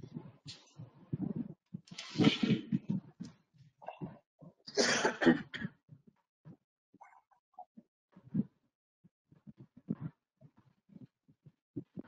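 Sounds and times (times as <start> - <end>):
person coughing: 4.7 - 5.8.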